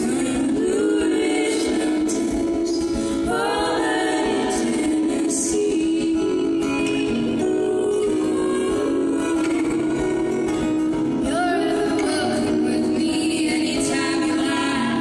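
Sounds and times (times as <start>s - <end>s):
acoustic guitar: 0.0s - 15.0s
women singing in harmony: 0.0s - 15.0s.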